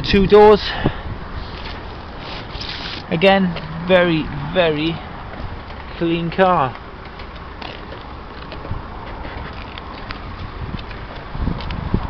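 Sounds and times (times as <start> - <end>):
wind rumble on microphone: 0.0 - 6.3, 8.0 - 12.0.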